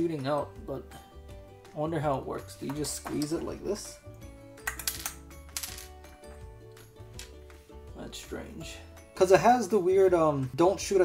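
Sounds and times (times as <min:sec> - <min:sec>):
soft background music: 0:00.0 - 0:11.0
plastic toy pieces clicking: 0:04.7 - 0:05.9.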